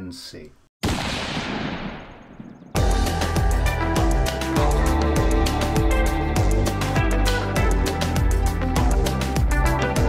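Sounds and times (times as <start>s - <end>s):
loud music with a beat: 2.8s - 10.0s.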